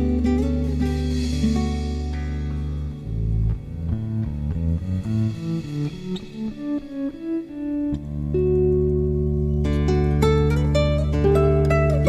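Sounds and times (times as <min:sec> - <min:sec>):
plucked melody music: 0:00.0 - 0:12.0.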